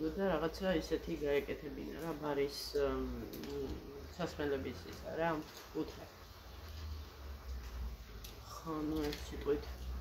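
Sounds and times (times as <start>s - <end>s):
woman talking: 8.4s - 9.9s.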